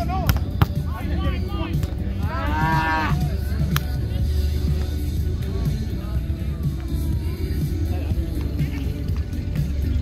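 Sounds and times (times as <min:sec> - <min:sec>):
people shouting: 0:01.0 - 0:03.6.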